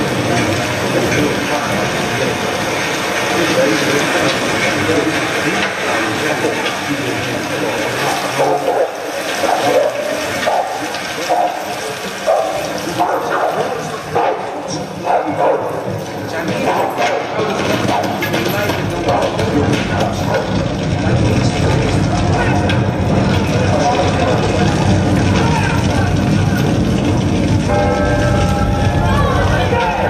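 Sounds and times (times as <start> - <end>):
indistinct voices: 0.0 - 30.0
dense rushing noise: 18.9 - 30.0.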